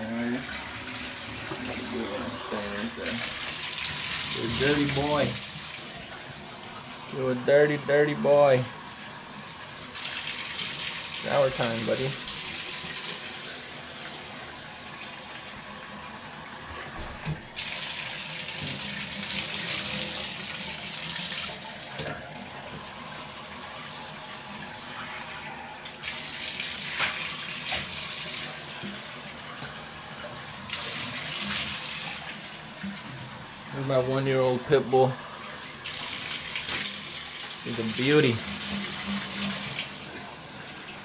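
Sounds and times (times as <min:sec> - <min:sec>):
water running into bathtub: 0:00.0 - 0:41.0.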